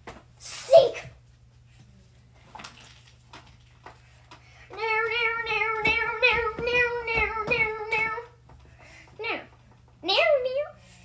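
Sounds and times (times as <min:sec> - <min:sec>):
low steady hum: 0:00.0 - 0:11.0
child singing: 0:04.7 - 0:08.4
knocks and bumps: 0:04.7 - 0:09.9.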